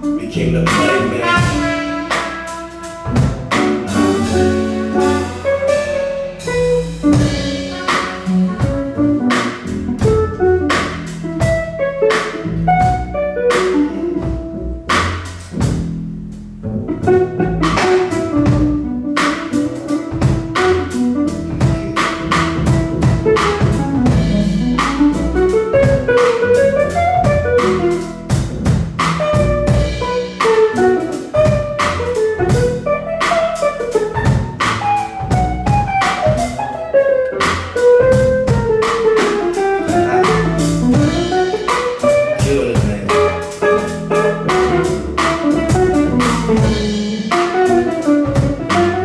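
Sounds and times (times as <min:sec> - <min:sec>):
drum kit: 0:00.0 - 0:49.0
hollow-body guitar melody: 0:00.0 - 0:49.0
upright bass: 0:00.0 - 0:49.0.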